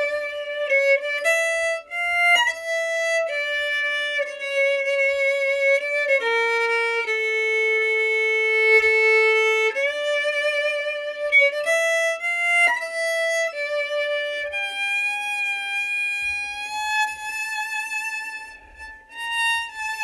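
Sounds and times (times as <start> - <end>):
solo violin melody: 0.0 - 20.0.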